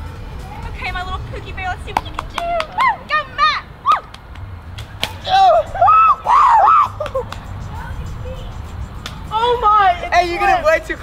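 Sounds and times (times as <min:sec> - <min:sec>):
children shrieking: 0:05.2 - 0:07.2.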